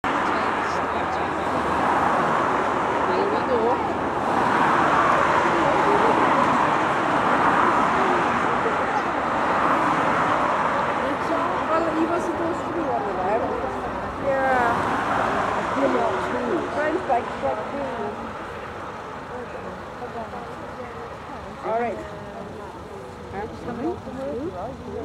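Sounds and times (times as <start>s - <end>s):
indistinct voices talking: 0.0s - 25.0s
road traffic: 0.0s - 25.0s.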